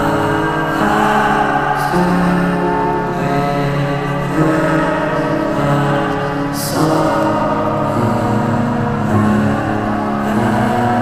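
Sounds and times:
experimental electronic music: 0.0 - 11.0.

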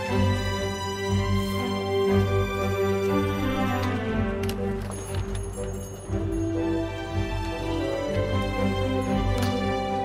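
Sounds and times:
ambient music with sustained tones: 0.0 - 10.0.

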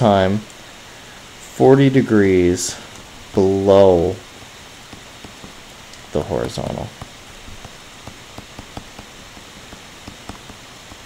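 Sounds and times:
steady hiss: 0.0 - 11.0
stylus tapping on tablet screen: 4.8 - 11.0.

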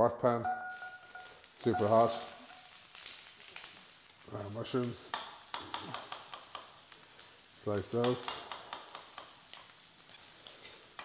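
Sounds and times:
carrots sizzling in a wok: 0.6 - 11.0.

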